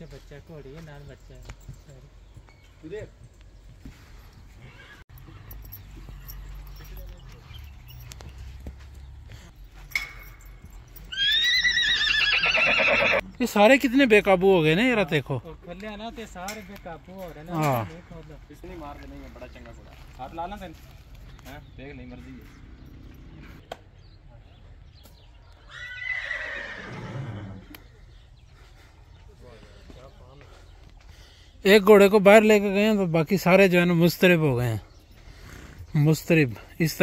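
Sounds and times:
horse whinnying: 4.6s - 5.0s, 11.1s - 13.2s, 25.6s - 27.7s.

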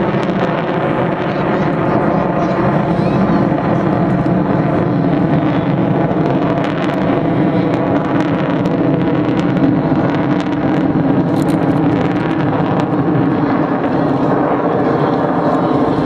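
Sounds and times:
jet engines roaring overhead: 0.0s - 16.0s.

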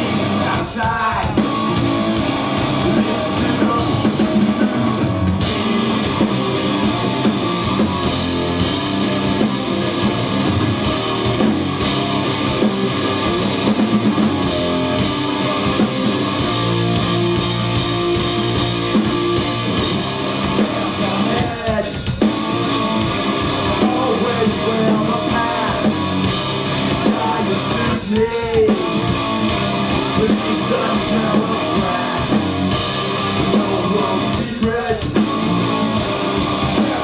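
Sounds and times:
bass guitar: 0.0s - 37.0s
drum kit: 0.0s - 37.0s
electric guitars: 0.0s - 37.0s.

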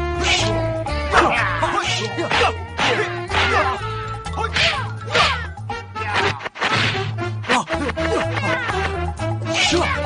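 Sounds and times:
film soundtrack music: 0.0s - 10.0s.

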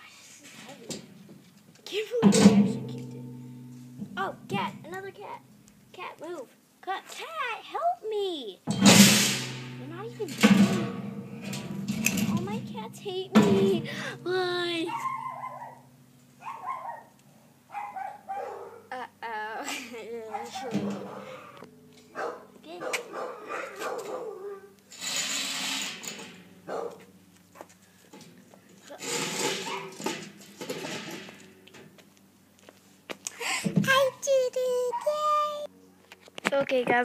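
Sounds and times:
metal table scraping and clattering: 2.2s - 5.0s, 8.7s - 16.0s, 20.4s - 22.4s, 24.9s - 26.7s, 28.2s - 31.9s
high-pitched whimpering cries: 18.9s - 21.6s.

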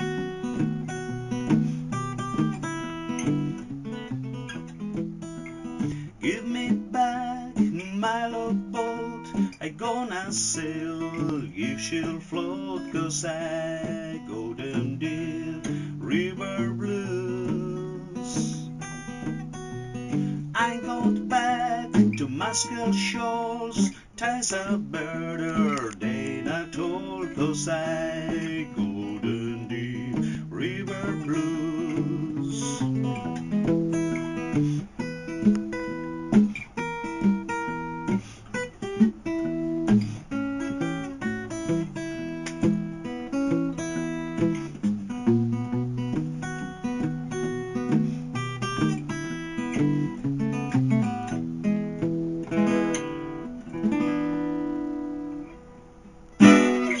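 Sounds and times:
acoustic guitar blues: 0.0s - 57.0s
loud guitar strike: 56.4s - 57.0s.

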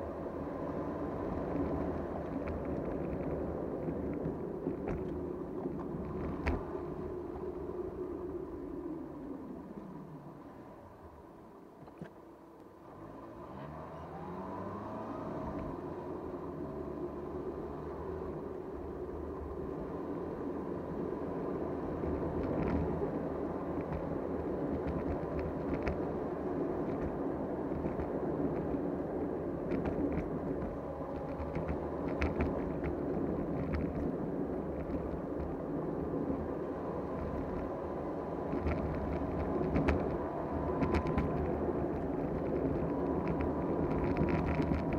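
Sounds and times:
car engine: 0.0s - 44.9s
tyre road noise: 0.0s - 44.9s.

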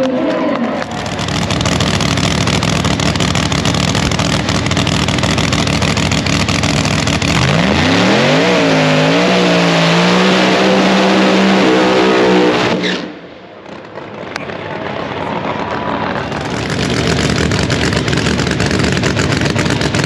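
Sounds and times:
drag racing car engine revving: 0.0s - 13.2s, 15.2s - 20.0s.

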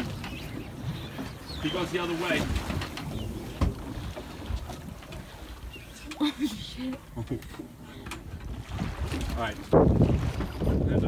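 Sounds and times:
boat rumble on water: 0.0s - 11.0s
wind on microphone: 8.2s - 11.0s.

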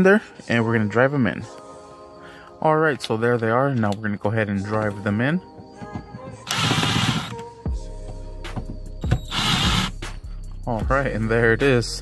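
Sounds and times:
cordless driver running: 6.5s - 7.4s, 9.1s - 9.9s.

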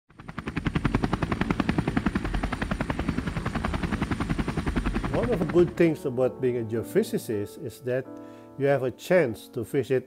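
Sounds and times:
rapid rotor-like pulsing: 0.2s - 5.8s.

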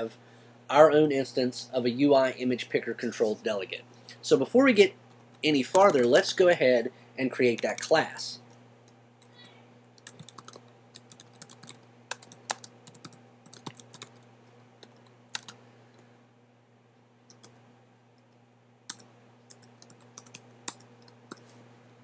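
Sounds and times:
steady low hum: 0.0s - 22.0s
computer keyboard typing: 5.1s - 6.1s, 10.0s - 15.6s, 17.3s - 17.6s, 18.9s - 21.4s.

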